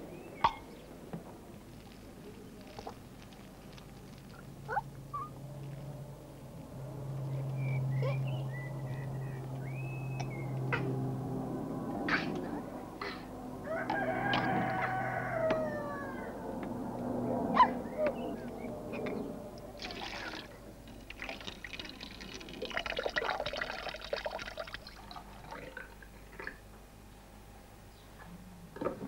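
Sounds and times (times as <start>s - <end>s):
water splashing in plastic tub: 19.8s - 25.9s.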